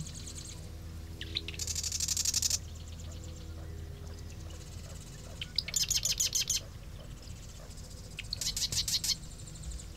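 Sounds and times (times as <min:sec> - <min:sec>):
wren singing rattling trill: 0:00.0 - 0:09.9.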